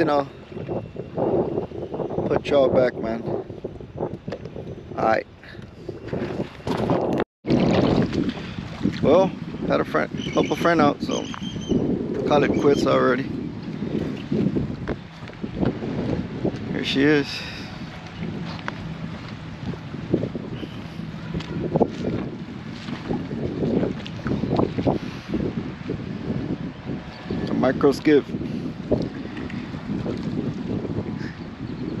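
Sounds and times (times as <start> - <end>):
wind buffeting microphone: 0.0 - 32.0
small waves lapping: 13.6 - 25.9.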